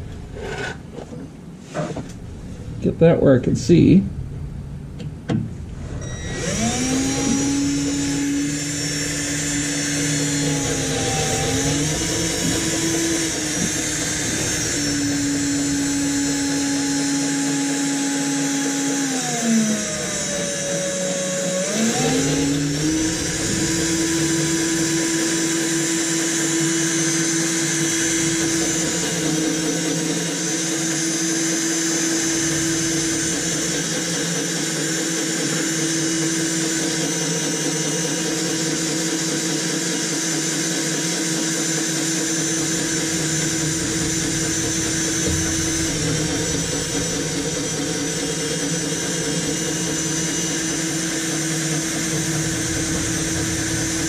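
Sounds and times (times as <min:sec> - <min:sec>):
electric drill boring into metal: 0:05.9 - 0:54.0.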